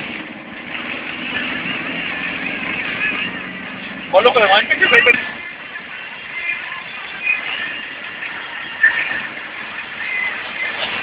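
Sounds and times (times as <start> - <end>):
van running on wet road: 0.0 - 11.0.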